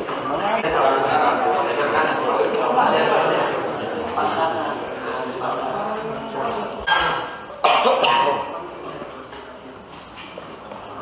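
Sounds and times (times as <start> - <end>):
person coughing: 7.6 - 8.5.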